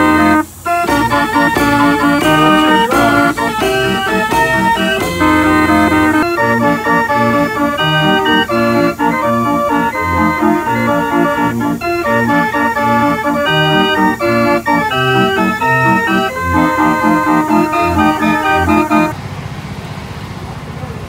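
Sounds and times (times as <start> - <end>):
band organ playing a tune: 0.0 - 19.2
quiet steady noise: 0.0 - 19.2.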